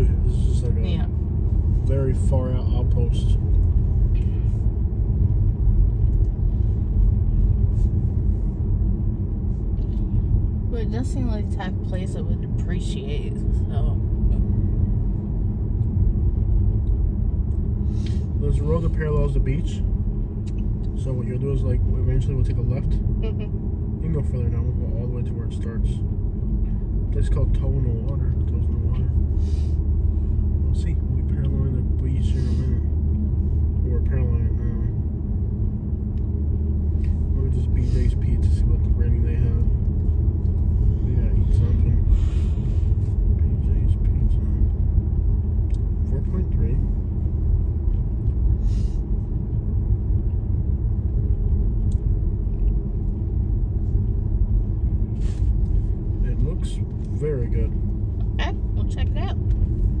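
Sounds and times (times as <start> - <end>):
car road and engine rumble: 0.0 - 60.0.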